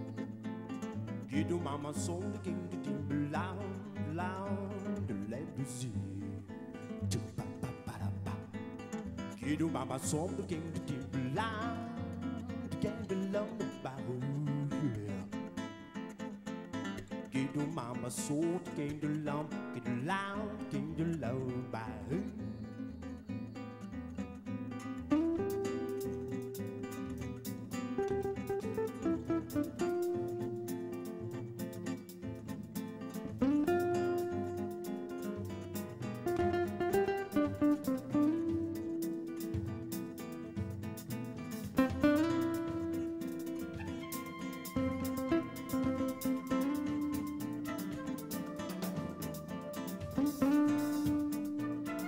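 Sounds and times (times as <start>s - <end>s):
latin jazz band with acoustic guitar: 0.0s - 52.0s
person singing wordless line: 1.3s - 8.7s, 9.4s - 15.5s, 17.2s - 23.1s.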